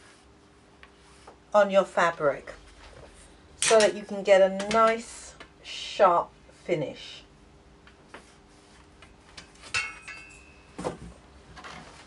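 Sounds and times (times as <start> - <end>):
thin ringing tone: 9.4 - 10.8.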